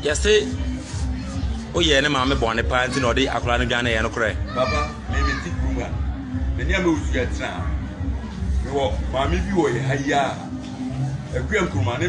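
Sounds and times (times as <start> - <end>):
music with pulsing low beat: 0.0 - 12.0
man speaking: 1.7 - 6.0.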